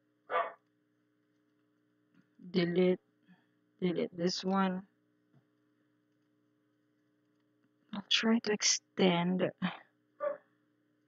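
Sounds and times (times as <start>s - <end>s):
faint steady hum: 0.0s - 11.0s
dog bark: 0.3s - 0.6s, 10.2s - 10.4s.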